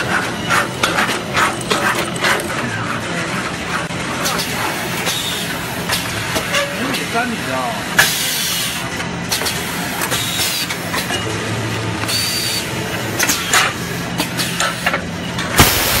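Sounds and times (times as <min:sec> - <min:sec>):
machinery low hum: 0:15.2 - 0:16.0
bursts of hissing: 0:15.6 - 0:16.0.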